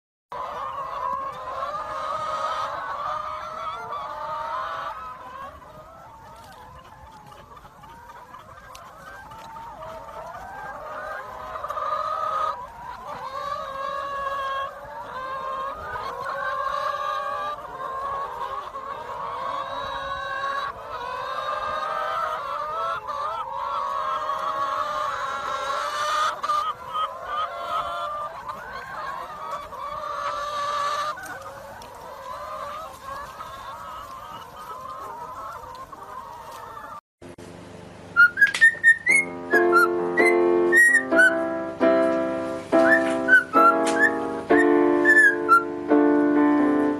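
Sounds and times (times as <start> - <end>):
hens clucking: 0.3 - 46.9.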